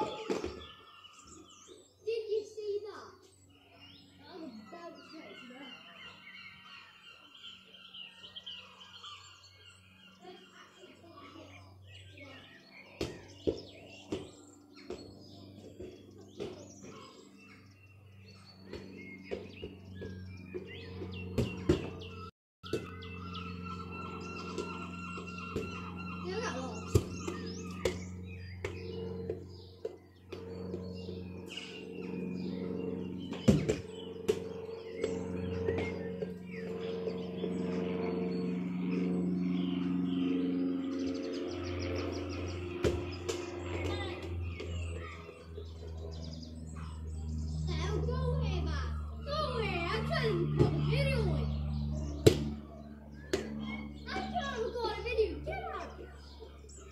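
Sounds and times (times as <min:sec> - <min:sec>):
steady low hum: 0:00.0 - 0:56.9.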